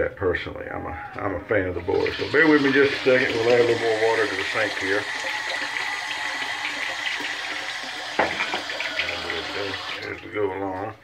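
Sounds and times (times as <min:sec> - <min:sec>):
tap running into sink: 0:02.1 - 0:10.2.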